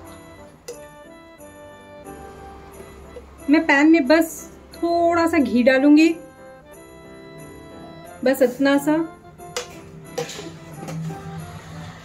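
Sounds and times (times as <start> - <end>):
soft plucked-string music: 0.0 - 3.8, 7.4 - 12.0.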